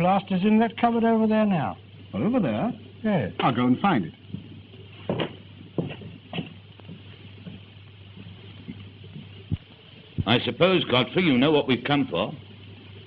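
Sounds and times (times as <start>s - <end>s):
film soundtrack hum and hiss: 0.0s - 13.0s
footsteps on a floor: 4.3s - 9.7s.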